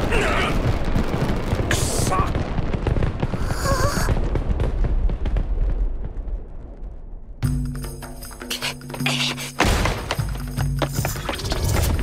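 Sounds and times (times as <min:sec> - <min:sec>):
fireworks crackling and popping: 0:00.0 - 0:07.2
low rumble: 0:02.3 - 0:07.5.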